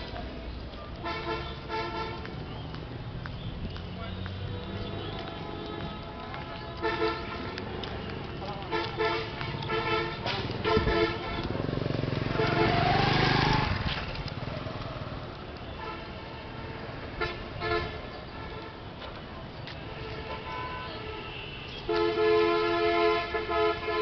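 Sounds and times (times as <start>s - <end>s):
road traffic: 0.0s - 24.0s
vehicle passing close by: 9.2s - 15.5s.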